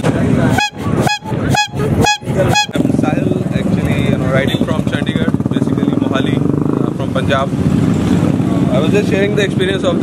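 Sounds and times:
motorcycle horn honking: 0.5 - 3.0.

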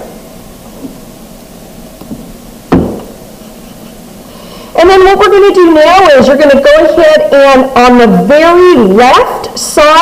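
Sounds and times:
sharp knock on desk: 2.7 - 3.1.

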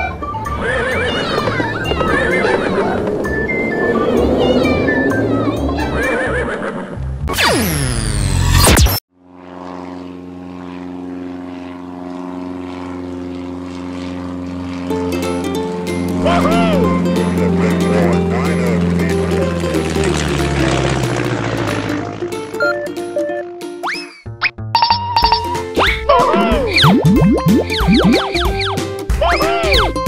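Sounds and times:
propeller plane engine drone: 0.0 - 24.0, 24.8 - 30.0
horse whinnying: 5.9 - 7.0
cartoon background music: 15.0 - 30.0
chirpy sounds: 25.8 - 28.8.

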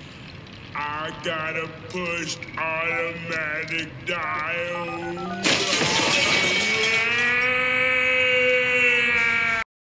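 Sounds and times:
man crying out in pain: 6.2 - 9.6.

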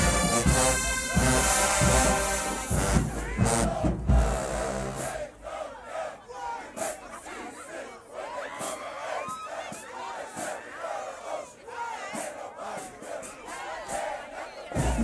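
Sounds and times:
crowd shouting and yelling: 0.0 - 15.0.

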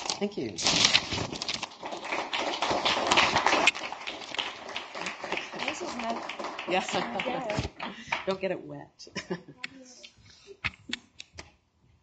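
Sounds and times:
audience applauding: 1.5 - 8.4.

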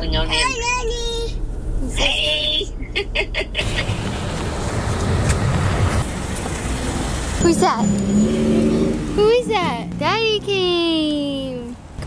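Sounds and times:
low outdoor rumble: 0.0 - 8.2, 8.8 - 12.0.

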